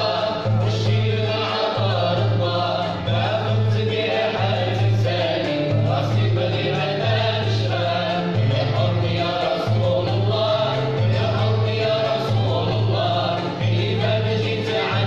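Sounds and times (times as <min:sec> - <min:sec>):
voices singing in unison: 0:00.0 - 0:15.0.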